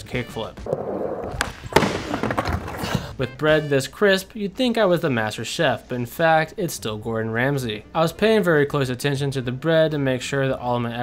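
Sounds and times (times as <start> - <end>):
skateboard slapping ramp: 0.7 - 2.9
skateboard rolling on wooden ramp: 0.7 - 3.1.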